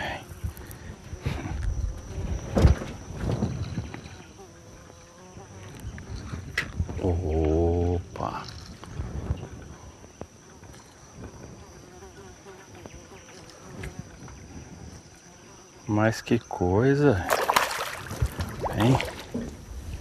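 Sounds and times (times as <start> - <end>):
man's low drawn-out voice: 0.0 - 0.5, 6.9 - 8.8.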